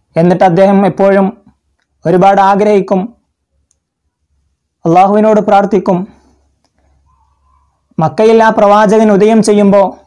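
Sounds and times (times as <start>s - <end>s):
man speaking: 0.1s - 3.3s, 4.8s - 6.3s, 8.0s - 10.0s.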